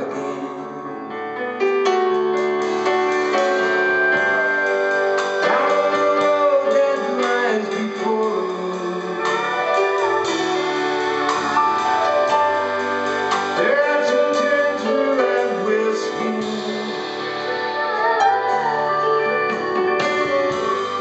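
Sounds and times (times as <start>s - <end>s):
steady bass line: 0.0s - 21.0s
pedal steel guitar melody: 1.8s - 21.0s.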